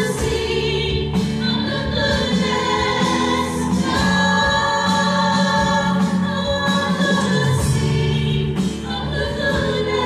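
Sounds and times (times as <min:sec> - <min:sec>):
acoustic guitar: 0:00.0 - 0:10.0
bass guitar: 0:00.0 - 0:10.0
keyboard: 0:00.0 - 0:10.0
voices singing together: 0:00.0 - 0:10.0.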